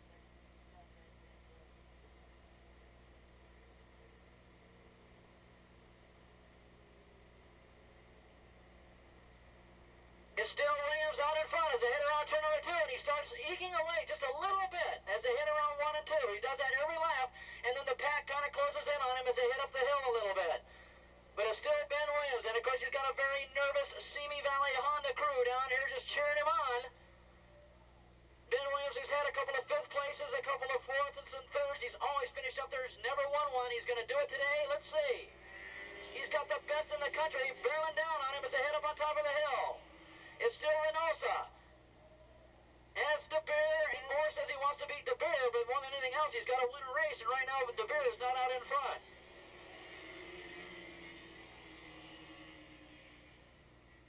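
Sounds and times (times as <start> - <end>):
race commentator talking: 10.4 - 20.7, 21.4 - 26.9, 28.5 - 41.6, 43.0 - 52.6.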